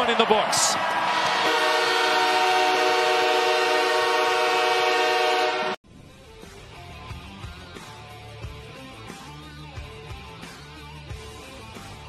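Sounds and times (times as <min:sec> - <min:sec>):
arena horn long blast: 0:01.1 - 0:05.8.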